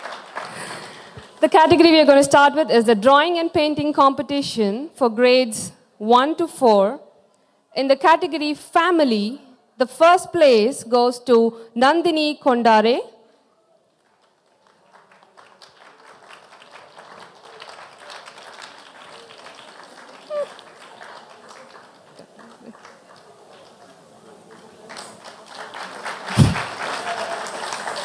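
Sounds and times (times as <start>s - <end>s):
audience applauding: 0.0s - 1.4s, 13.9s - 28.0s.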